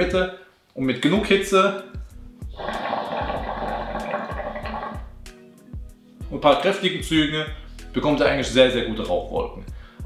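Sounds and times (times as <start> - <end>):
water bubbling in hookah base: 2.5 - 5.1.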